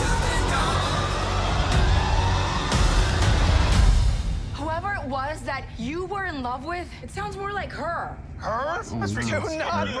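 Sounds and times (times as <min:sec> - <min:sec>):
deep bass trailer music: 0:00.0 - 0:06.5.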